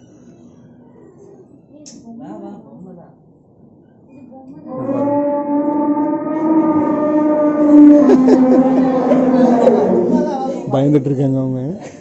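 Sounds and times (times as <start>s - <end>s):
long drawn-out bellow: 4.5s - 10.7s.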